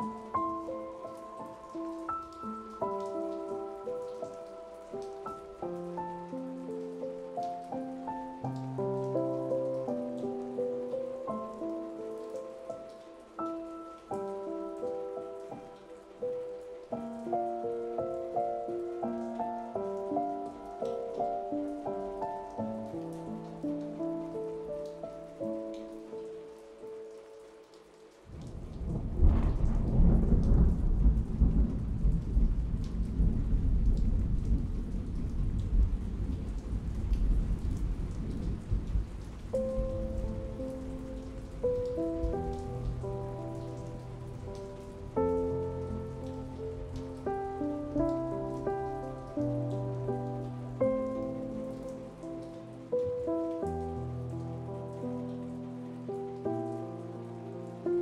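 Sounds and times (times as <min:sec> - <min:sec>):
soft piano notes: 0:00.0 - 0:32.2, 0:32.8 - 0:58.0
steady rain: 0:00.0 - 0:58.0
thunder clap and rumble: 0:28.4 - 0:43.0.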